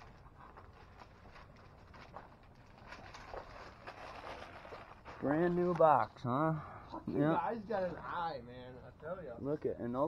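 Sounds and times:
faint rustling: 0:00.0 - 0:06.3.

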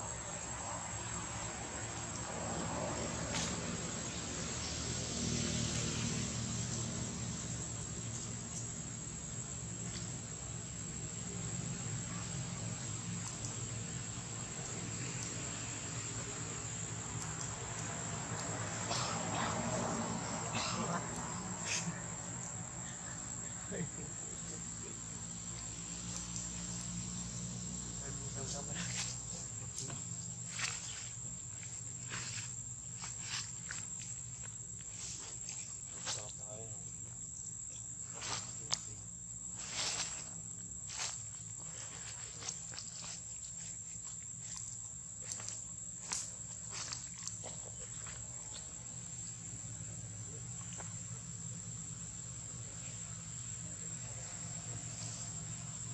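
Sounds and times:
dry leaves rustling: 0:28.4 - 0:36.2, 0:39.4 - 0:48.5.

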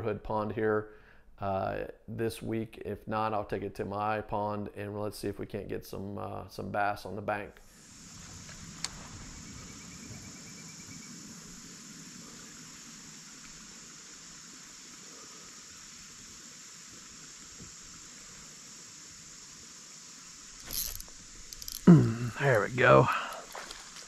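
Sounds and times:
insects chirping: 0:07.6 - 0:24.0.

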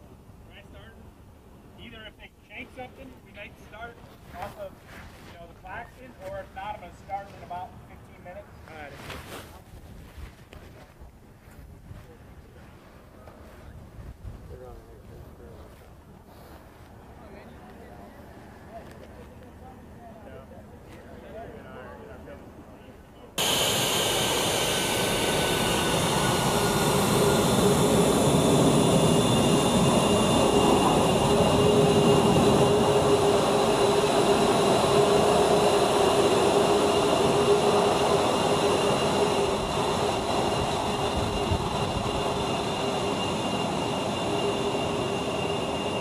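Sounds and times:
wind buffeting microphone: 0:13.6 - 0:15.6, 0:24.5 - 0:46.0
burst of hiss: 0:23.4 - 0:27.4
jet engines roaring with whine: 0:23.4 - 0:46.0.

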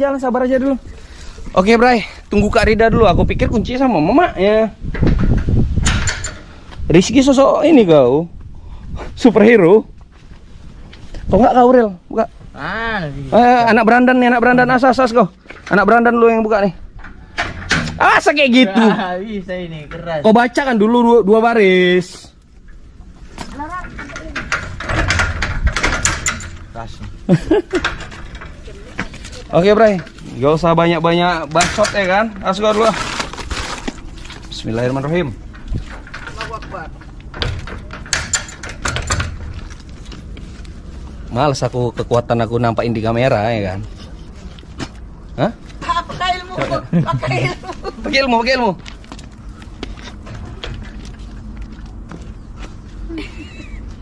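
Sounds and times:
person laughing: 0:27.3 - 0:28.0, 0:46.8 - 0:48.1, 0:53.0 - 0:54.0.

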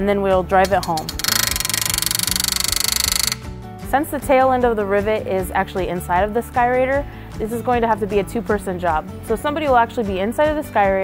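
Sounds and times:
pneumatic rivet gun rattling: 0:00.7 - 0:03.5.

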